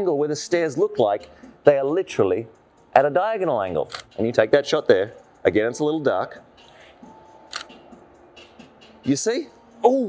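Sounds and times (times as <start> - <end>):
camera shutter click: 3.9 - 4.2, 7.5 - 7.8.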